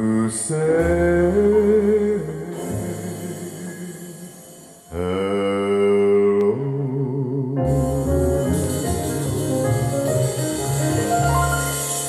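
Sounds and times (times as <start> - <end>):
ballad over loudspeakers: 0.0 - 8.6.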